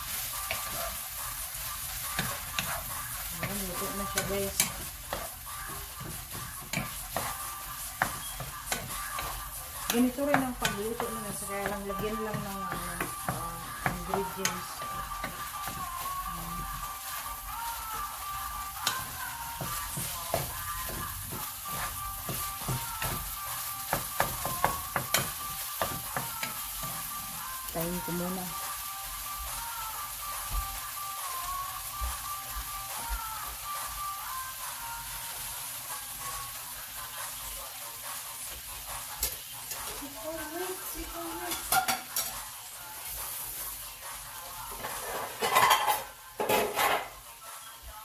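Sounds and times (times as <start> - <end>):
wooden spoon scraping a pan: 0.0 - 17.4, 44.7 - 47.2
faint wavering music: 0.0 - 48.0
meat sizzling in a skillet: 0.0 - 48.0.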